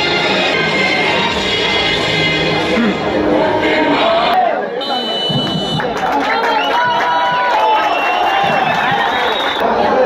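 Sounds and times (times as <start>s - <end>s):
stadium crowd noise: 0.0s - 10.0s
referee whistle blast: 4.8s - 5.8s.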